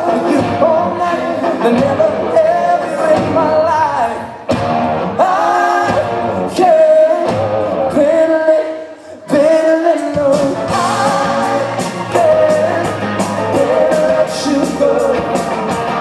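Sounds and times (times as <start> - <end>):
man singing: 0.0 - 4.5, 5.1 - 16.0
pop-rock band playing: 0.0 - 16.0.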